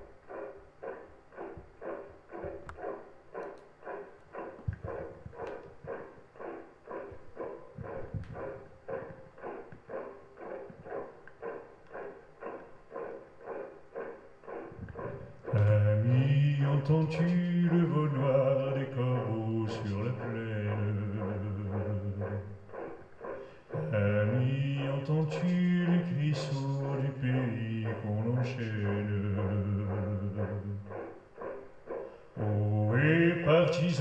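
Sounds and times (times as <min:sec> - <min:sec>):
sharp clicks: 0:00.0 - 0:16.3
marching footsteps: 0:01.3 - 0:16.1
man singing: 0:15.5 - 0:22.5, 0:23.8 - 0:30.9, 0:32.4 - 0:34.0.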